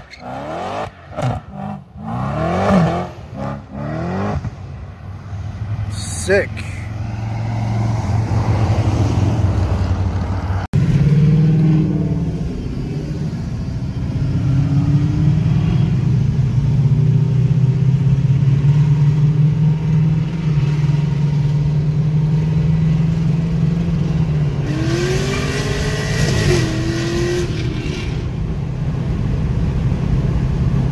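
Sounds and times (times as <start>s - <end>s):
car engines revving: 0.0s - 30.9s.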